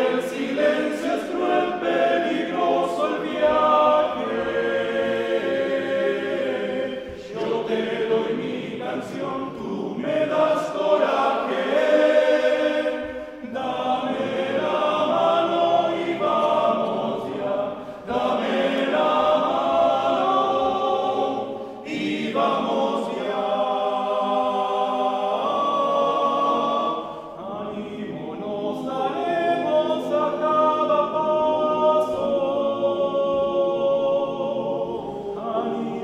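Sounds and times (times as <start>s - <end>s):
men's choir singing: 0.0s - 36.0s.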